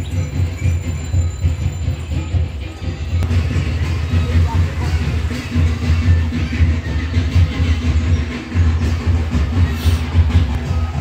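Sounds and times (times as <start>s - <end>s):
music with pulsing bass beat: 0.0s - 11.0s.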